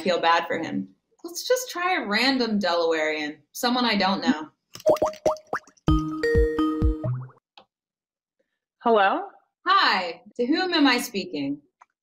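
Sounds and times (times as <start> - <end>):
rising plopping chirps: 4.8 - 7.4.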